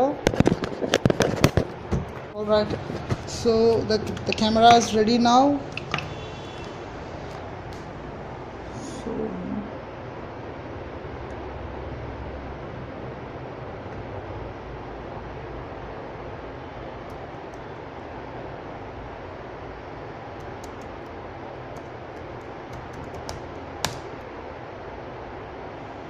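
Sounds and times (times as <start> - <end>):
laptop keys clicking: 20.4 - 21.1, 21.7 - 24.1.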